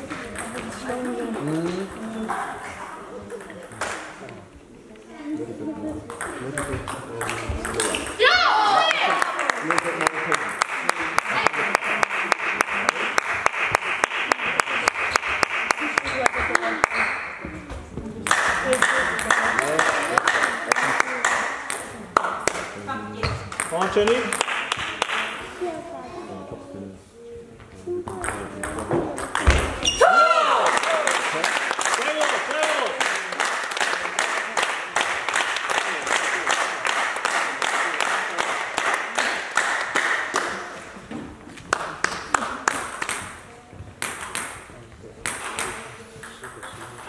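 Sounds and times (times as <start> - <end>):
table tennis ball bouncing: 0.2 - 1.2, 6.1 - 8.2, 23.2 - 24.9, 28.0 - 30.0, 44.0 - 47.0.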